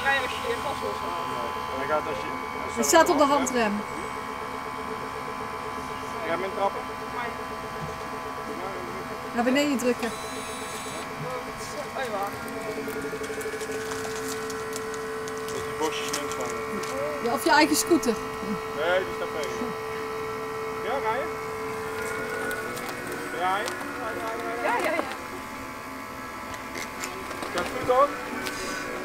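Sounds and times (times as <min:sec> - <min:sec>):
electric car humming tones: 0:00.0 - 0:29.0
thin high whine: 0:00.0 - 0:29.0.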